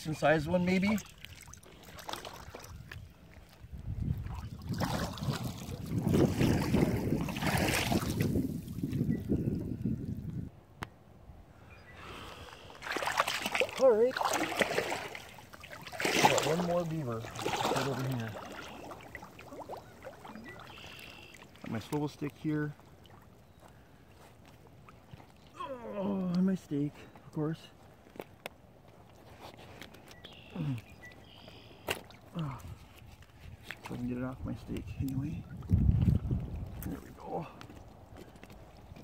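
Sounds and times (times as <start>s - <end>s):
water splashing and sloshing: 0.0s - 9.7s, 12.1s - 39.0s.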